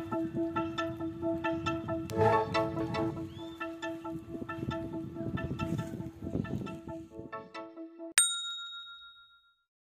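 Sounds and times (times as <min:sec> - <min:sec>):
bright bell-like ding: 0:08.2 - 0:09.5.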